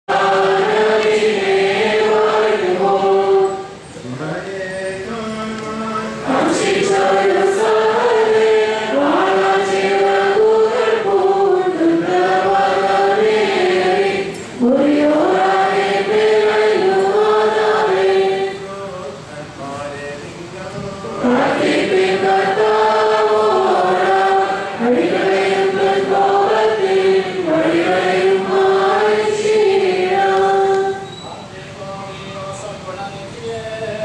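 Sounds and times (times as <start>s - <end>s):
group chanting together: 0.1s - 3.8s, 4.4s - 19.9s, 20.7s - 31.1s.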